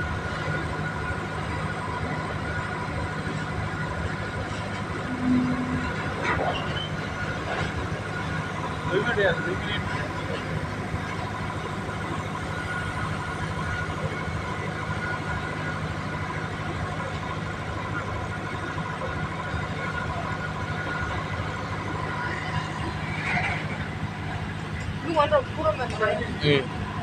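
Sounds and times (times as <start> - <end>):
locomotive engine humming: 0.0 - 27.0.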